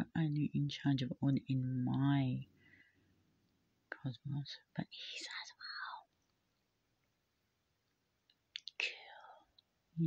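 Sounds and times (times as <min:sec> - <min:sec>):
woman whispering: 0:03.9 - 0:06.3, 0:08.6 - 0:10.0.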